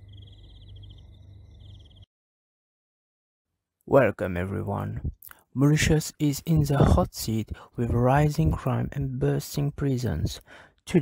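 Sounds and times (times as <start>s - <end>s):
crickets trilling: 0.0s - 2.0s
low steady hum: 0.0s - 2.0s.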